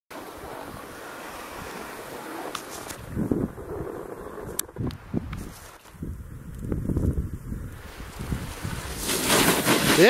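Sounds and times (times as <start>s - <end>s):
snowboard scraping snow: 0.1s - 5.9s, 7.8s - 10.0s
wind on microphone: 0.1s - 10.0s.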